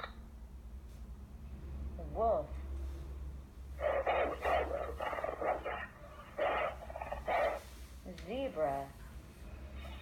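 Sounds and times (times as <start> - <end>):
wolf barking and growling: 3.8 - 7.7.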